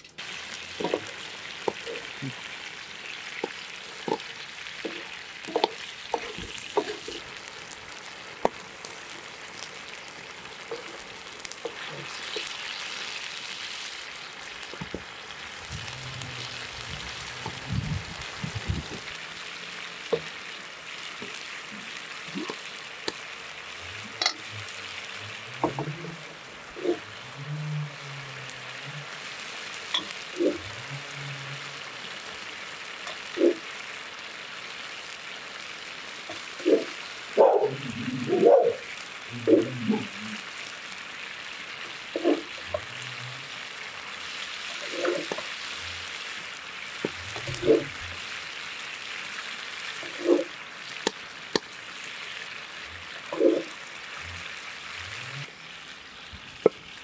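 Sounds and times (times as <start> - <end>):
chilli sizzling and bubbling in pan: 0.0 - 57.0.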